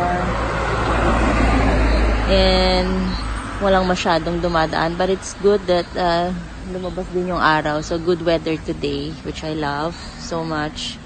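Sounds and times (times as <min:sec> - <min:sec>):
car driving past: 0:00.0 - 0:05.0.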